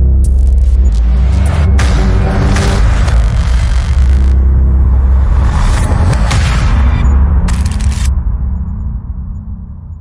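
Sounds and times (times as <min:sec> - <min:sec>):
deep bass rumble: 0:00.0 - 0:10.0.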